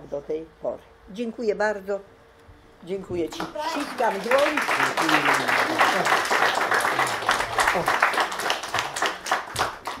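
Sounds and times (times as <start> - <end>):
audience applauding: 3.6 - 10.0.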